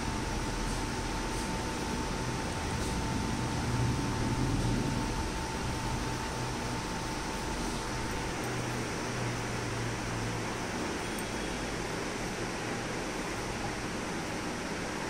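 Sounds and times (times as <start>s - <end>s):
steady hum and hiss: 0.0s - 15.0s
faint high steady tone: 11.0s - 12.0s.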